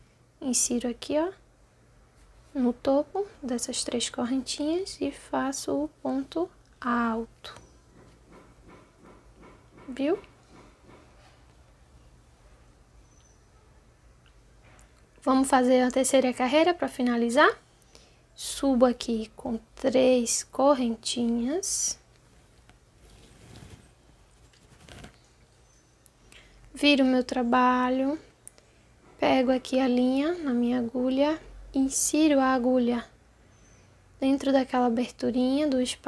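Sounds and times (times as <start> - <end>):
low room hum: 0.0 - 36.0
yarn rustling over crochet hook: 21.1 - 25.8
soft scrape: 22.3 - 25.2.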